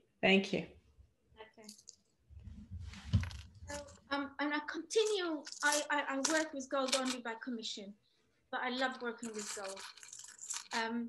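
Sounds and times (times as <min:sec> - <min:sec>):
necklace jingling: 0:01.6 - 0:02.0, 0:05.0 - 0:07.2, 0:09.2 - 0:10.8
person speaking: 0:02.7 - 0:08.0, 0:08.6 - 0:11.0.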